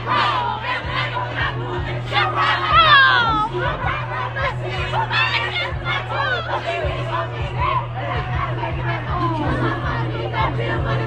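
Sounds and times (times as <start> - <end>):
nightclub music with heavy bass: 0.0 - 11.0
voices shouting or singing: 0.0 - 11.0.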